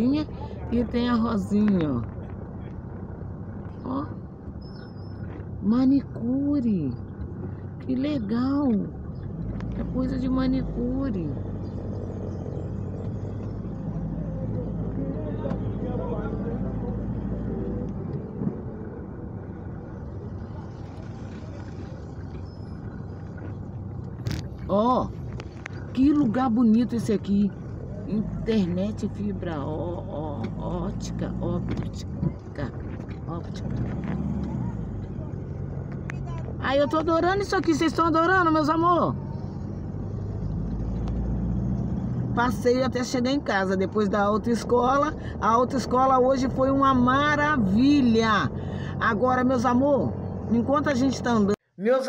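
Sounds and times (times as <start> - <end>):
car engine and road rumble: 0.0 - 52.0.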